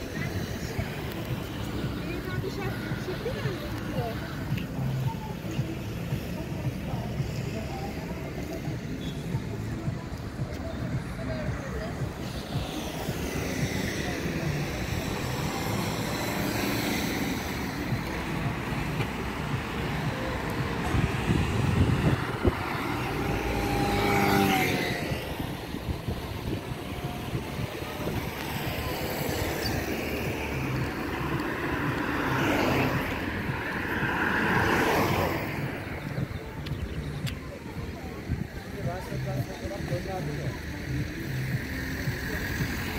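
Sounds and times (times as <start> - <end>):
motor scooter passing: 0.0 - 39.2
street traffic: 0.0 - 42.9.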